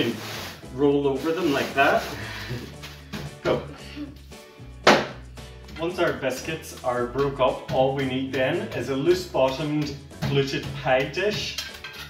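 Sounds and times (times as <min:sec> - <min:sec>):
background music: 0:00.0 - 0:12.0
sharp knocks: 0:04.8 - 0:05.2
metal tin on steel worktop: 0:11.4 - 0:12.0.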